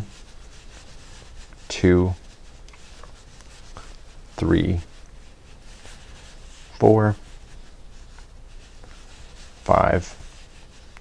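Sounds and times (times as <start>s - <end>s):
crochet hook scratching yarn: 0.0s - 11.0s.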